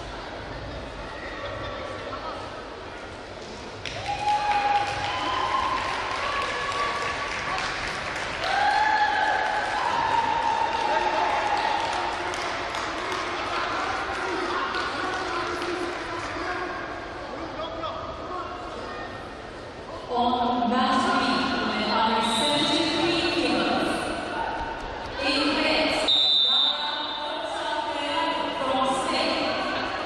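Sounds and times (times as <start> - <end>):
crowd murmur: 0.0 - 3.8
crowd clapping: 3.8 - 16.6.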